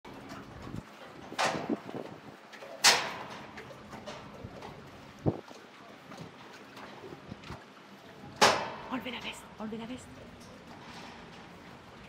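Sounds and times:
footsteps and knocks on boat deck: 0:00.1 - 0:07.7.

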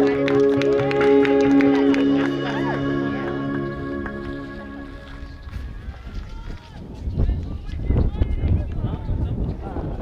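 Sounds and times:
music: 0:00.0 - 0:06.3
people's voices: 0:00.0 - 0:10.0
wind rumble on microphone: 0:05.0 - 0:10.0.

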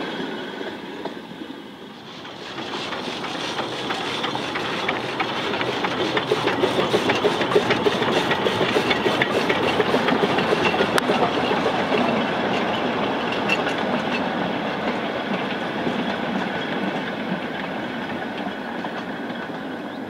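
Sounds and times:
steam locomotive exhaust beats: 0:02.0 - 0:20.0
train wheels clattering over rail joints: 0:02.0 - 0:20.0.

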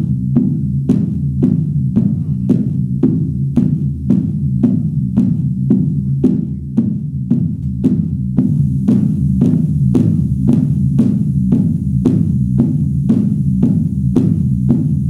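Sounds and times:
low synth bass drone: 0:00.0 - 0:15.0.

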